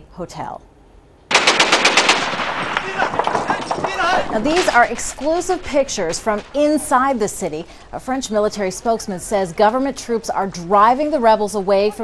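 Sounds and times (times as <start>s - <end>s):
automatic gunfire: 1.3s - 7.8s.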